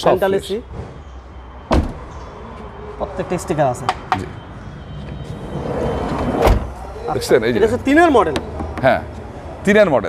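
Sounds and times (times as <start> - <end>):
van door shutting bang: 1.7 - 2.0, 6.4 - 6.7.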